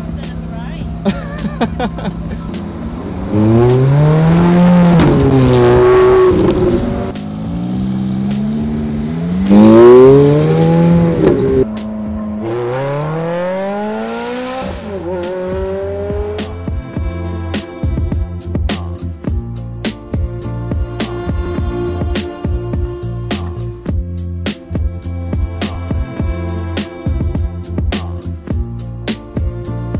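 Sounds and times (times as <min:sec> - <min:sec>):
car engine accelerating: 0:00.0 - 0:18.6
music with a beat: 0:00.1 - 0:02.7, 0:03.3 - 0:12.7, 0:14.6 - 0:29.9.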